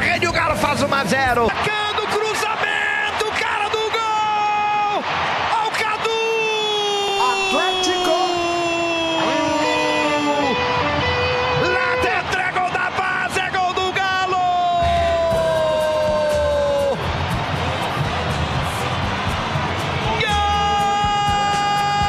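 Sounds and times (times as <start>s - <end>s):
music: 0.0s - 1.5s, 7.8s - 13.4s, 14.7s - 22.0s
commentator shouting goal cry: 0.1s - 10.7s, 11.6s - 17.0s, 20.0s - 22.0s.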